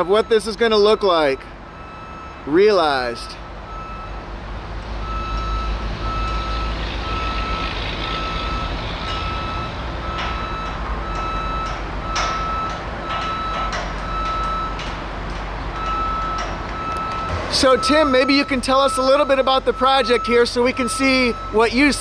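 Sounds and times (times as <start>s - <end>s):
backup alarm beeping: 0.0s - 4.2s, 5.0s - 14.8s, 15.8s - 22.0s
diesel engine rumble: 0.0s - 22.0s.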